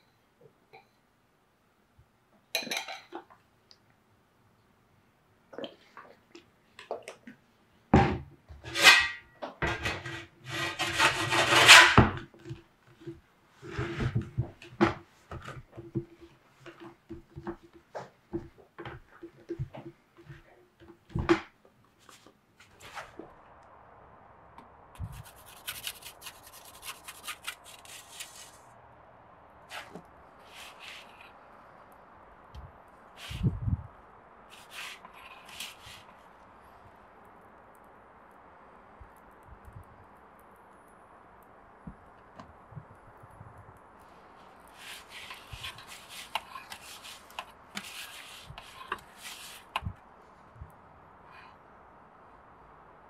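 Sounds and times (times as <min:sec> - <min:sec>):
pizza peel scraping wooden board: 0:08.6 - 0:12.2, 0:25.1 - 0:28.6, 0:44.8 - 0:49.8.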